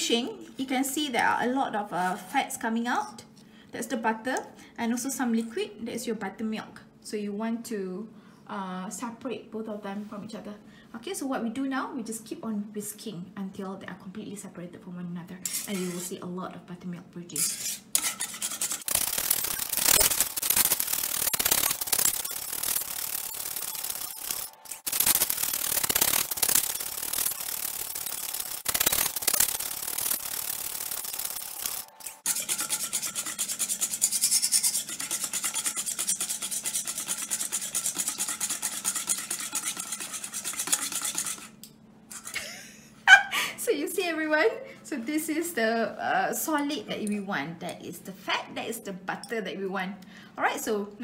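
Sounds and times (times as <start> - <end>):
whisk scraping metal bowl: 15.4 - 16.2, 17.3 - 42.4.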